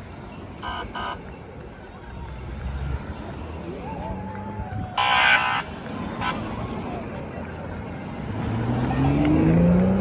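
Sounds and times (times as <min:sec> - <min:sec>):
road noise: 0:00.0 - 0:10.0
vehicle engine accelerating: 0:08.0 - 0:10.0.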